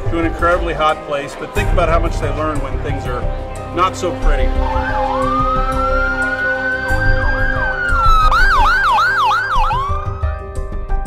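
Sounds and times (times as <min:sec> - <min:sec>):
background music with sustained notes: 0:00.0 - 0:11.0
ambulance siren: 0:04.4 - 0:10.7.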